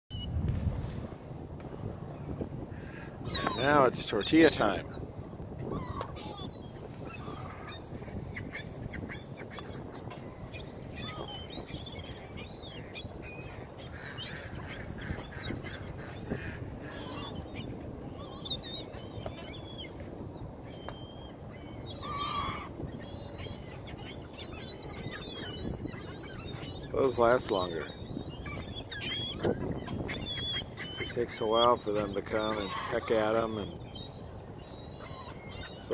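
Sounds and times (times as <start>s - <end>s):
gulls calling: 1.6s - 35.9s.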